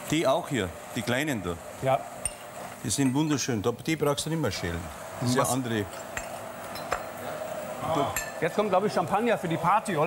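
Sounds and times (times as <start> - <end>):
dishes and cutlery clinking: 5.9 - 7.2, 8.1 - 8.4.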